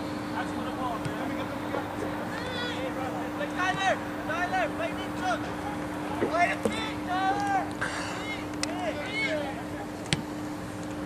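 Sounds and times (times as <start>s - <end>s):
steady low hum: 0.0s - 11.0s
people shouting: 1.3s - 9.6s.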